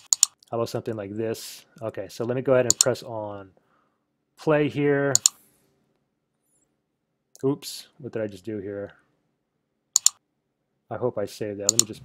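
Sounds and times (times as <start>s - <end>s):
computer mouse clicks: 0.0s - 0.5s, 2.7s - 2.9s, 5.2s - 5.4s, 10.0s - 10.2s, 11.7s - 12.0s.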